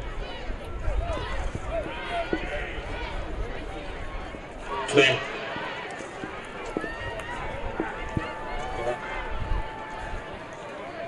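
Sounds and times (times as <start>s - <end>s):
indistinct voices of players and crowd: 0.0s - 11.0s.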